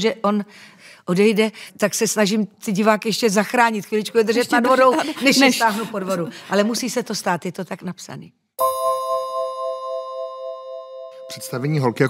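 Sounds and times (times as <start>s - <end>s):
struck chime ringing: 8.6s - 12.0s.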